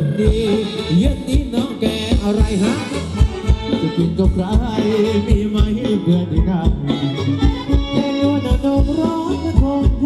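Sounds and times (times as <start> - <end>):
bass line: 0.0 - 10.0.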